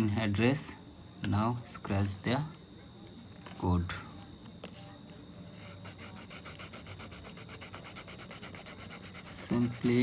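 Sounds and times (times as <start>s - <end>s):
fingernail scratching coating: 5.8s - 10.0s.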